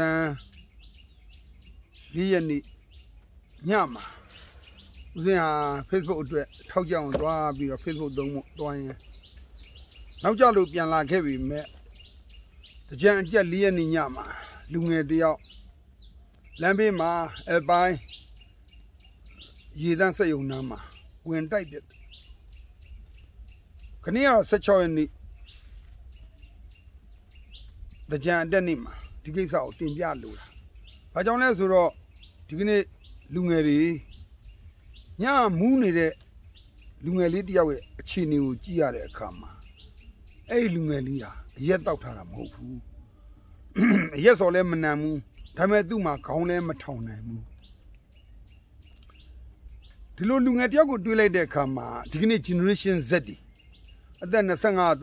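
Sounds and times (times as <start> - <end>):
small birds chirping: 0.0 - 55.0.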